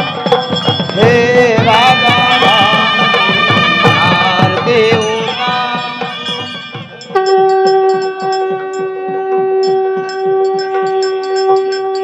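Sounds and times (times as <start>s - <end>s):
devotional drumming: 0.0s - 12.0s
music with singing: 0.0s - 12.0s
conch shell blown: 7.0s - 12.0s.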